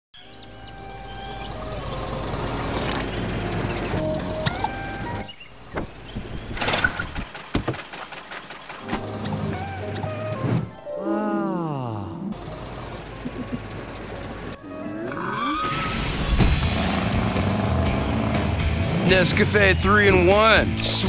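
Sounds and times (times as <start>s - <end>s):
light music: 0.2s - 5.4s, 8.8s - 15.1s, 16.4s - 21.0s
car engine running: 0.6s - 10.1s, 12.0s - 14.6s, 16.0s - 21.0s.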